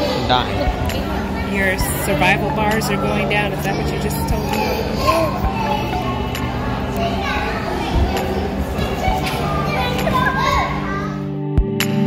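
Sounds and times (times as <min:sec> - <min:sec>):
children's voices and calls: 0:00.0 - 0:11.3.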